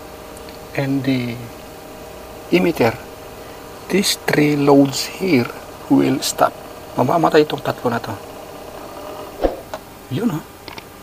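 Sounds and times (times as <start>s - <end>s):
motor and fans whirring down: 0.0s - 11.0s.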